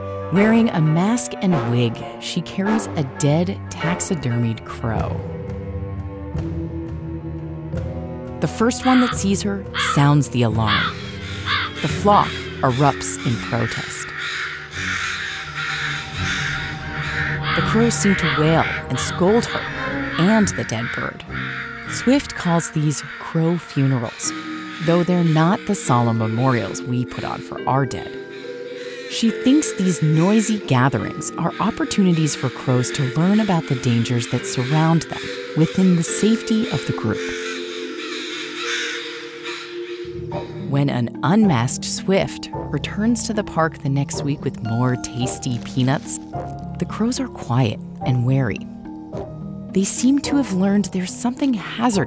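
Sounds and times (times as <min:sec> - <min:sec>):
crows cawing harshly: 0:08.8 - 0:10.0, 0:10.6 - 0:26.8, 0:28.0 - 0:40.2.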